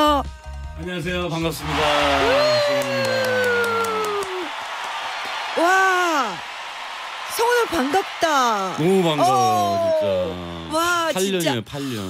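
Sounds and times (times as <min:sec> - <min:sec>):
woman exclaiming in delight: 0:02.2 - 0:04.5.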